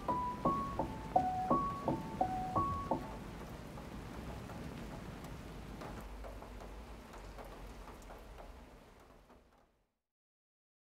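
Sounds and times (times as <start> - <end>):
piano note: 0.0 - 3.2
rain-like hiss: 0.0 - 10.0.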